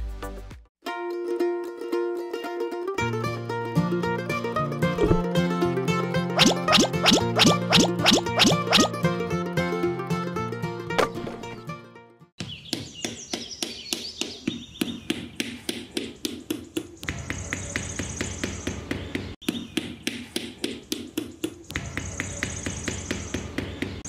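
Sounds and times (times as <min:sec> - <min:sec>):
background music: 0:00.0 - 0:12.3
hammer tapping bamboo sticks: 0:19.4 - 0:23.6.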